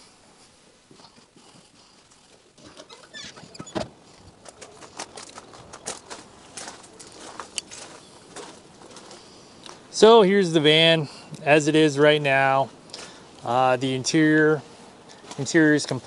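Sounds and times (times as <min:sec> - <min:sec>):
footsteps on gravel: 0:03.9 - 0:10.2.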